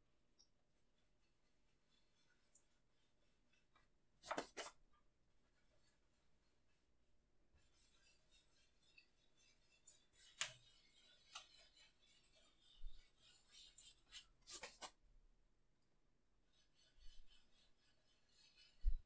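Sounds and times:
paintbrush rubbing on canvas: 0:07.6 - 0:15.0, 0:16.4 - 0:19.0.

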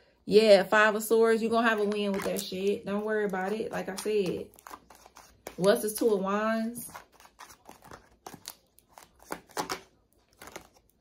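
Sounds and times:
cards being shuffled: 0:03.7 - 0:05.8, 0:06.8 - 0:11.0.

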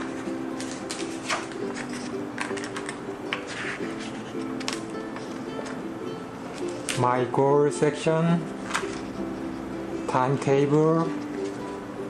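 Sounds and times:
paper pages rustling: 0:00.0 - 0:05.8, 0:08.6 - 0:09.2, 0:10.8 - 0:11.8
soft background music: 0:00.0 - 0:12.0.

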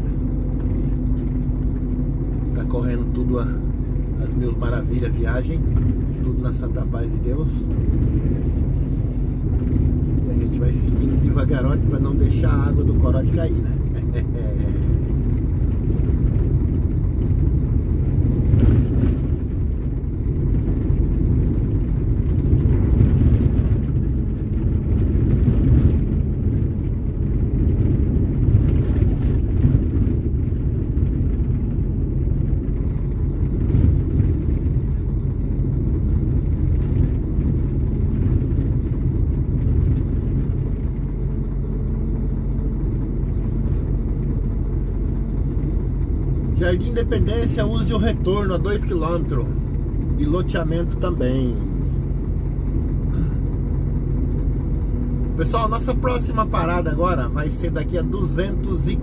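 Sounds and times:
truck engine and road rumble: 0:00.0 - 0:59.0.

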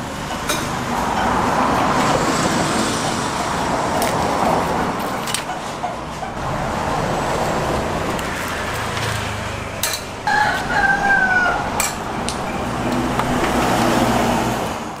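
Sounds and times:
outdoor background noise: 0:00.0 - 0:15.0
rooster crowing: 0:10.2 - 0:12.1.

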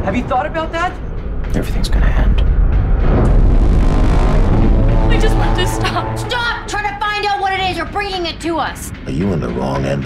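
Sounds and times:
low rumbling hit: 0:01.0 - 0:08.4
droning chord: 0:02.4 - 0:09.0.

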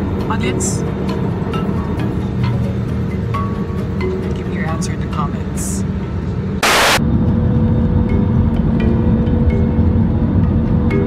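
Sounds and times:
brief loud hiss: 0:06.6 - 0:07.0.

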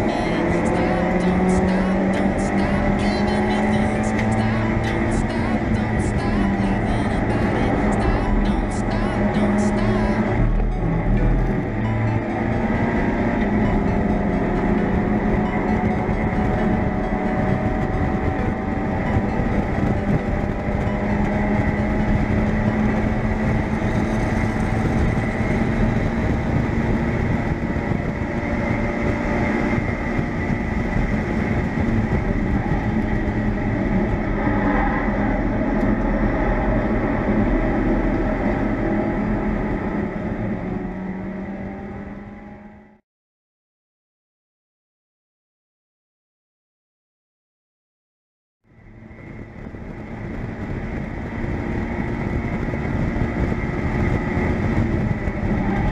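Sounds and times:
race car engine running hard: 0:00.0 - 0:43.0, 0:48.7 - 0:55.9
road noise: 0:00.0 - 0:43.0, 0:48.7 - 0:55.9
wind noise: 0:09.9 - 0:42.1, 0:48.7 - 0:55.9.

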